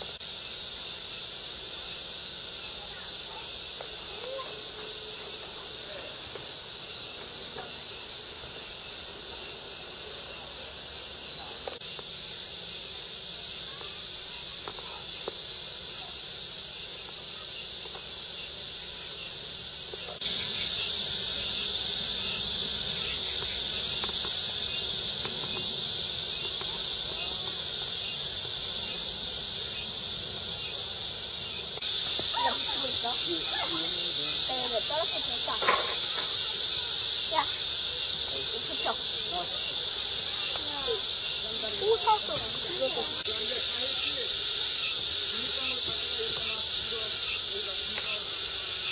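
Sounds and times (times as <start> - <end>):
cicadas buzzing: 0.0 - 48.9
high-pitched insect chorus: 0.0 - 48.9
faint voices: 2.6 - 8.6, 13.0 - 16.4, 25.3 - 29.7, 32.0 - 48.9.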